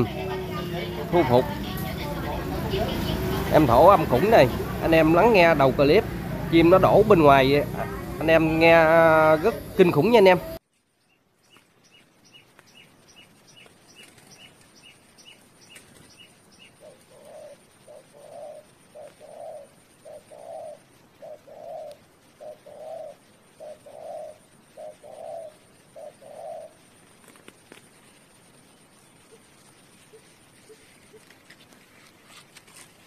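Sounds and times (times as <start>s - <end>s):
dove cooing: 0.0s - 10.6s, 16.6s - 27.0s.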